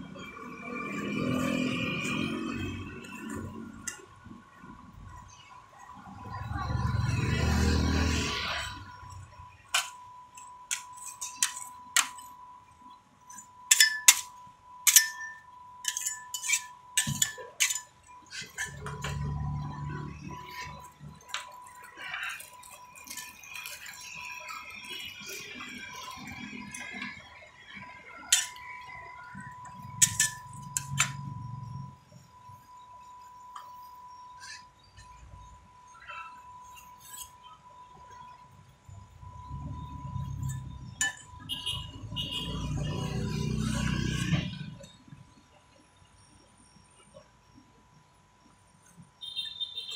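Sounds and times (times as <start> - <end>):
metal spatulas scraping: 0.2 - 4.1, 6.3 - 12.4, 13.3 - 31.9, 32.5 - 38.3
metal spatulas clinking on pan: 10.7 - 12.3, 13.4 - 19.4, 28.2 - 28.8, 29.7 - 31.3.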